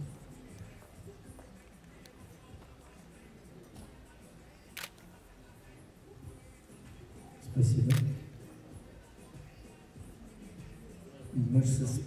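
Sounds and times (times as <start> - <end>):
camera shutter click: 4.8 - 5.0, 7.9 - 8.2.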